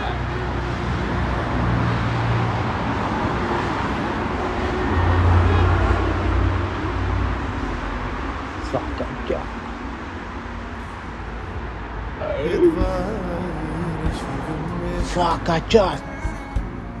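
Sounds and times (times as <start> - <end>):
street traffic noise: 0.0 - 17.0
vehicle passing with low rumble: 0.2 - 16.5.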